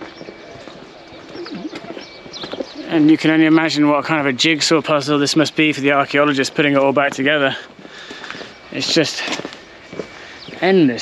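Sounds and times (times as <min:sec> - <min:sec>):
faint indistinct voices: 0:00.0 - 0:04.9
man speaking: 0:02.8 - 0:07.7, 0:08.7 - 0:09.5, 0:10.5 - 0:11.0.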